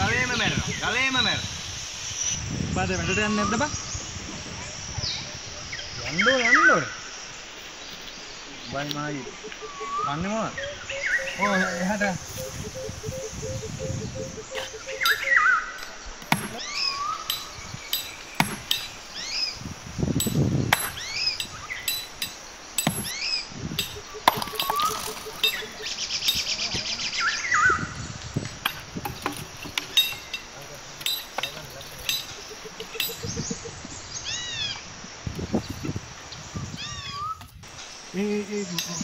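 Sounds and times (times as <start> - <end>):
bird calling: 7.8 - 34.9
hammer striking rock: 16.2 - 19.0, 20.2 - 26.8, 28.6 - 32.4.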